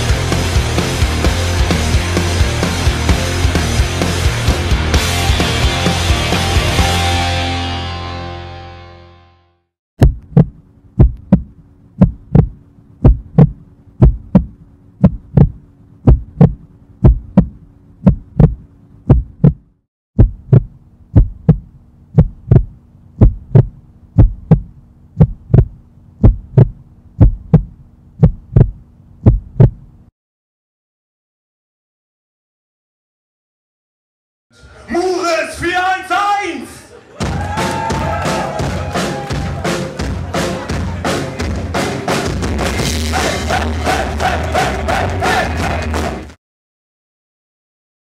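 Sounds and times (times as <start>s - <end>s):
heartbeat thuds: 10.0s - 30.0s
low hum: 10.0s - 30.1s.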